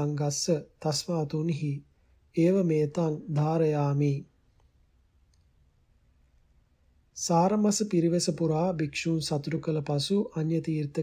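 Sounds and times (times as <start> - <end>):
person reciting: 0.0 - 4.3, 7.2 - 11.0.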